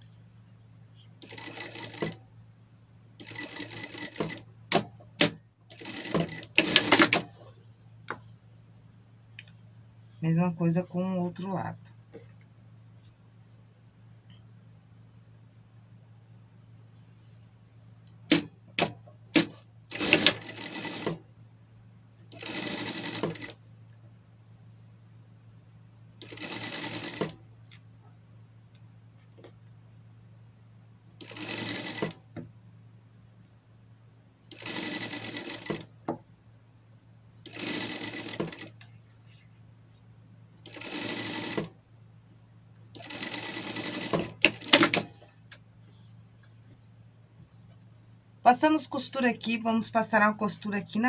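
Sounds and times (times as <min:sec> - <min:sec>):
low steady hum: 0:00.0 - 0:51.0
sewing machine stitching: 0:01.2 - 0:02.2, 0:03.2 - 0:07.4, 0:18.3 - 0:21.2, 0:22.3 - 0:23.6, 0:26.2 - 0:27.4, 0:31.2 - 0:32.2, 0:34.5 - 0:35.9, 0:37.5 - 0:38.8, 0:40.6 - 0:41.8, 0:43.0 - 0:45.2.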